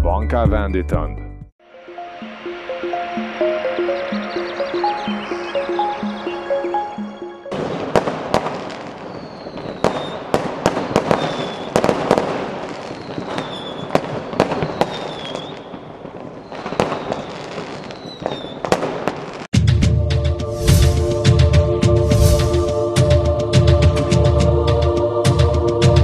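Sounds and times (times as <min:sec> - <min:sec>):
firework whistles: 0:07.5 - 0:19.5, 0:22.1 - 0:22.7
fireworks bangs and crackles: 0:07.5 - 0:19.6.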